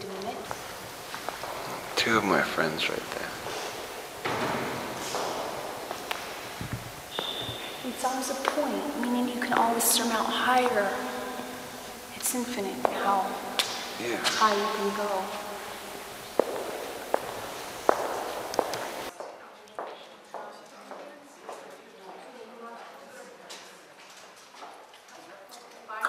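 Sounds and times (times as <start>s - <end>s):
footsteps on stone paving: 0.1s - 2.1s, 3.1s - 11.4s, 12.2s - 14.7s, 16.1s - 21.6s
low thuds: 4.0s - 9.7s.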